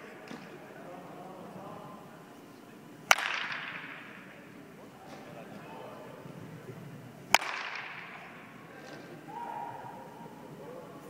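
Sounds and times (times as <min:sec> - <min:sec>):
baseball bat hitting ball: 0:03.1 - 0:05.4, 0:07.3 - 0:09.8.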